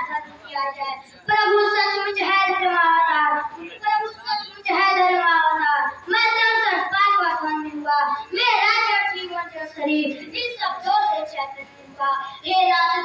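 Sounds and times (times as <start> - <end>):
child singing into microphone: 0.0 - 13.0.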